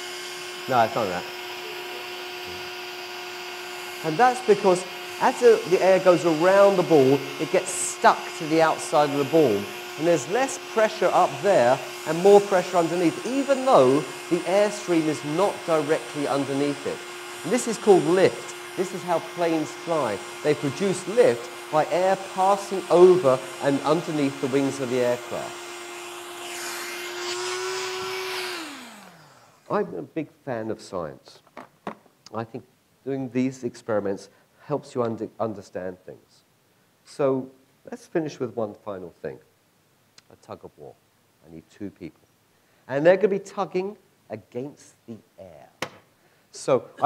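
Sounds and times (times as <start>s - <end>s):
electric fan running: 0.0s - 29.8s.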